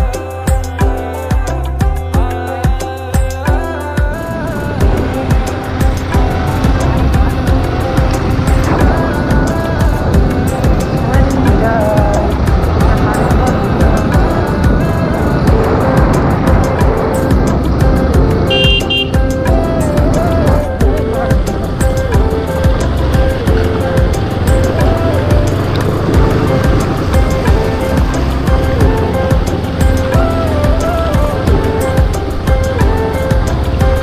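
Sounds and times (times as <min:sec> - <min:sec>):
background music: 0:00.0 - 0:34.0
motorcycle engine running: 0:00.0 - 0:34.0
wind noise: 0:03.9 - 0:34.0.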